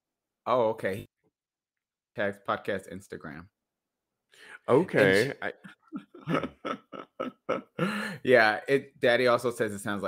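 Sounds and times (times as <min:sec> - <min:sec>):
man laughing: 0:04.7 - 0:08.6.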